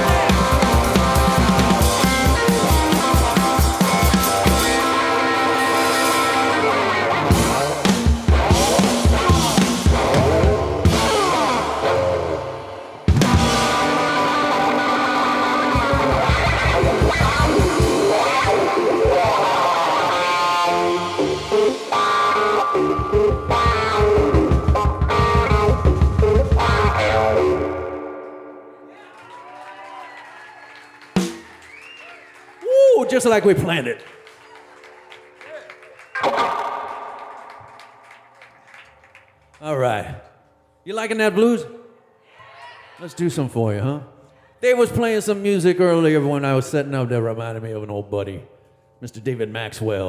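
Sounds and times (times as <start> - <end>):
drum kit beat: 0.0 - 5.1, 7.3 - 11.6, 13.1 - 14.2, 15.6 - 19.6, 20.7 - 27.2, 31.2 - 31.7
electric guitar: 0.0 - 28.8, 36.1 - 38.1.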